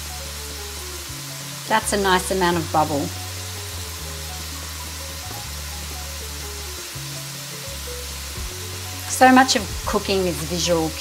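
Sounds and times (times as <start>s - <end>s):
background music with low notes: 0.0s - 11.0s
potatoes sizzling in oil: 0.0s - 11.0s.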